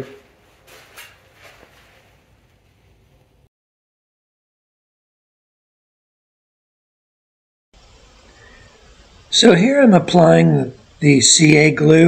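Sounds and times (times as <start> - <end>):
faint steady hiss: 0.0 - 3.5, 7.8 - 12.0.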